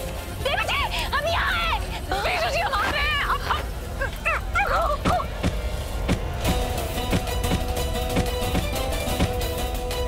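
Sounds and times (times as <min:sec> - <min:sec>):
dramatic soundtrack music: 0:00.0 - 0:10.0
steady drum beat: 0:05.0 - 0:09.8.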